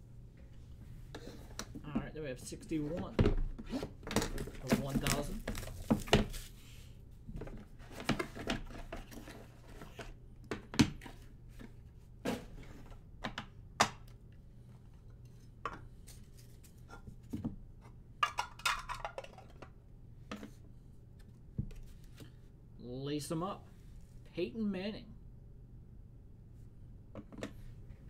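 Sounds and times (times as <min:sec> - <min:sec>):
faint steady hum: 0:00.0 - 0:28.0.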